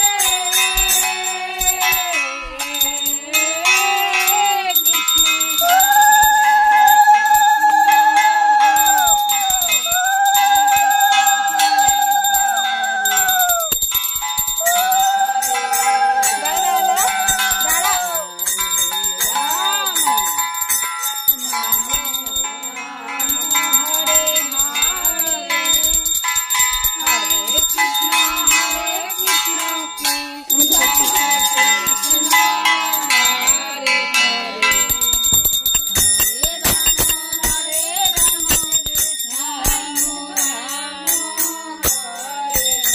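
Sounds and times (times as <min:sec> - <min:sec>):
hand bell ringing rapidly: 0:00.0 - 0:42.9
voices singing devotional song: 0:00.0 - 0:42.9.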